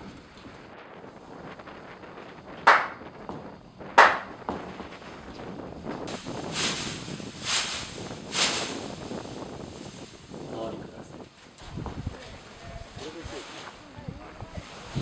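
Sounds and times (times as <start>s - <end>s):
rustling bursts: 0.0s - 15.0s
wind noise on microphone: 0.0s - 15.0s
sharp knocks: 2.7s - 4.7s.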